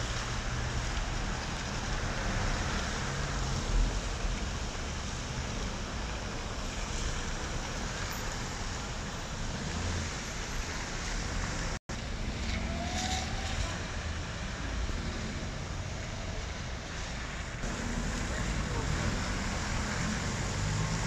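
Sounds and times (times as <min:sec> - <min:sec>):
rain: 0:00.0 - 0:21.0
slow car traffic on wet street: 0:00.0 - 0:21.0.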